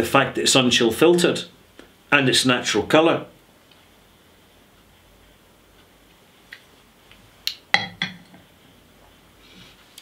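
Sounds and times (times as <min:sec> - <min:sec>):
glass clinking on wooden cask: 0:07.8 - 0:08.3.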